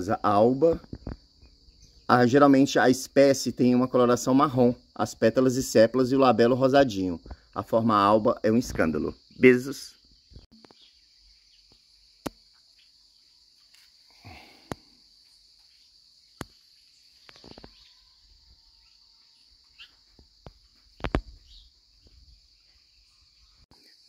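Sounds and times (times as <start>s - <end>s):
high-pitched insect trilling: 0.0s - 24.0s.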